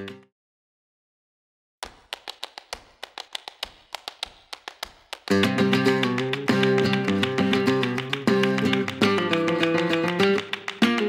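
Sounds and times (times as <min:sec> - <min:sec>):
flamenco guitar: 0:00.0 - 0:00.3, 0:02.0 - 0:11.0.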